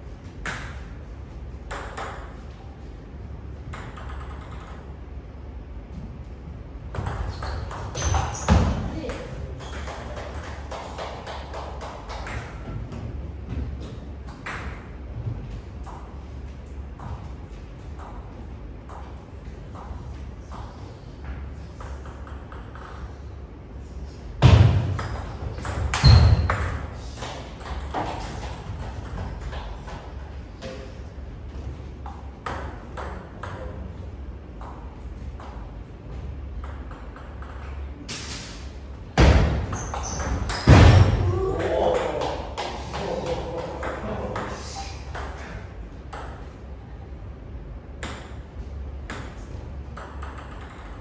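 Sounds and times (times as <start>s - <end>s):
table tennis ball hits: 1.7s - 2.4s, 3.7s - 4.9s, 6.9s - 12.8s, 14.3s - 14.9s, 21.8s - 23.1s, 24.4s - 30.1s, 39.2s - 46.5s, 48.0s - 48.4s, 49.0s - 51.0s
voices: 41.2s - 45.1s.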